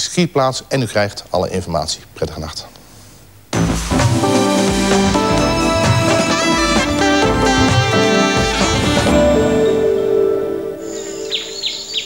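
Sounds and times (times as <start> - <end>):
thin high tone: 5.1 - 12.0.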